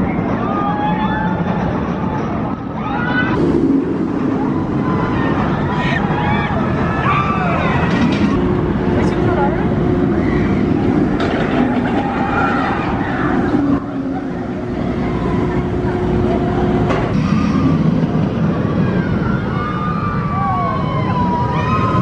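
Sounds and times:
people's voices and shouts: 0.0s - 22.0s
roller coaster train rumbling: 0.0s - 22.0s.

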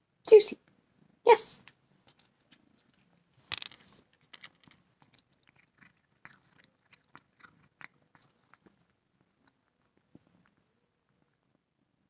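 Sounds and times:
cat chewing: 3.9s - 11.4s.

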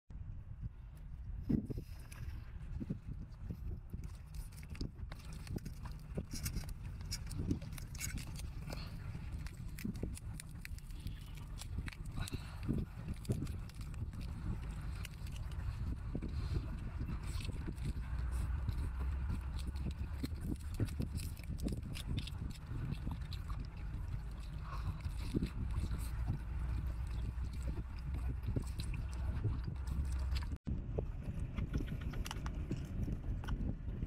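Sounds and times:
low rumble: 0.1s - 34.0s
sucking and chewing: 0.7s - 34.0s
shellfish shells cracking: 4.1s - 15.8s, 17.2s - 25.8s.

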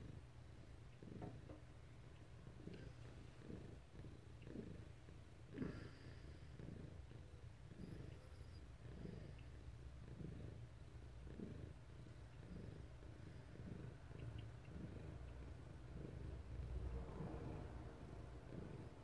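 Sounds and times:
cat purring: 0.0s - 19.0s.

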